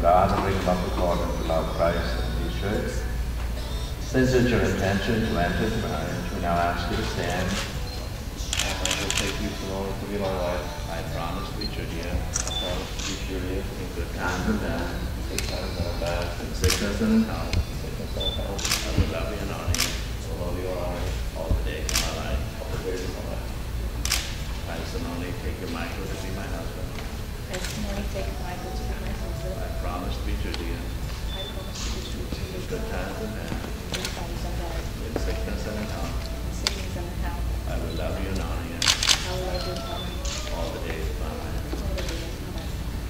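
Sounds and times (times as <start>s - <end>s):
soft speech: 0.0s - 23.6s, 24.6s - 43.0s
low voices: 0.0s - 43.0s
camera shutter clicks: 18.6s - 19.0s, 38.8s - 39.3s.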